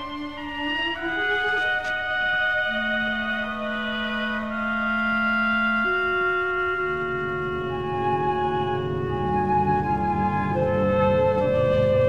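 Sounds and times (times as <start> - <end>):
orchestra playing sustained notes: 0.0 - 12.0.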